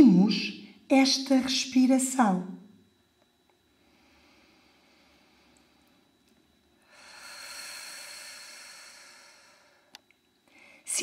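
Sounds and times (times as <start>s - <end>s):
person breathing slowly: 3.7s - 6.2s, 6.8s - 10.9s.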